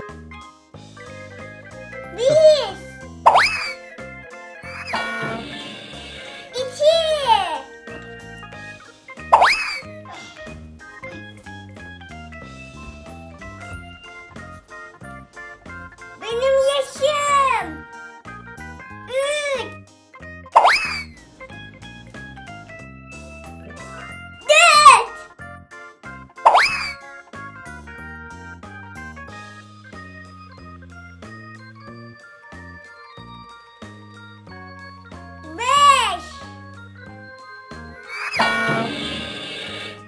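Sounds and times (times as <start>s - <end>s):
bouncy children's music: 0.0s - 40.0s
cartoon boing: 3.3s - 3.8s, 9.3s - 9.8s, 20.6s - 21.1s, 26.5s - 27.0s.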